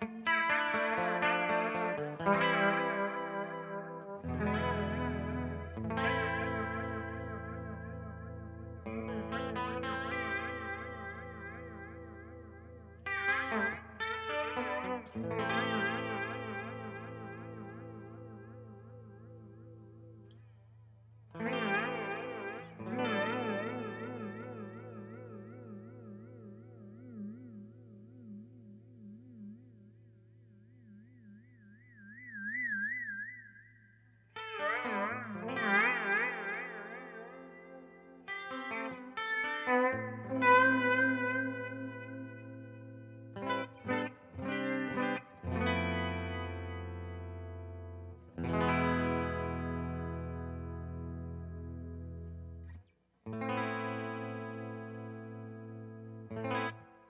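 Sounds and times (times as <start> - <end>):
clean electric guitar with flanger: 0.0 - 57.0.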